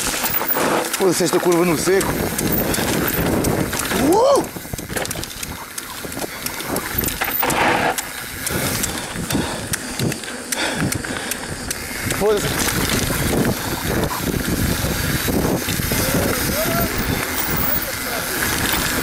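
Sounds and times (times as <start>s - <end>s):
bike clicks and rattles: 0.0s - 19.0s
tyre and air rush: 6.0s - 19.0s.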